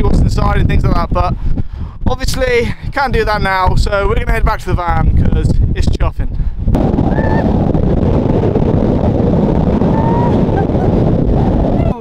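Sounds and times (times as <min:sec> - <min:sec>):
wind buffeting the microphone: 0:00.0 - 0:12.0.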